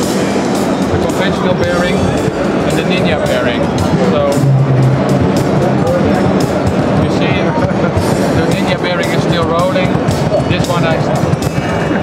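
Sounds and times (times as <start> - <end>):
music with percussive hits: 0.0 - 12.0.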